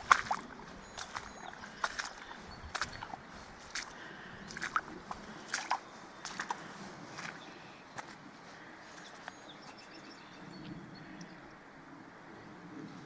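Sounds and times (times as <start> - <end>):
footsteps on wet gravel: 0.0 - 10.1.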